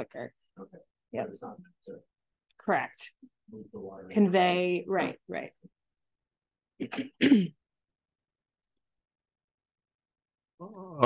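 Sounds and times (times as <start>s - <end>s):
person clearing throat: 6.8s - 7.6s.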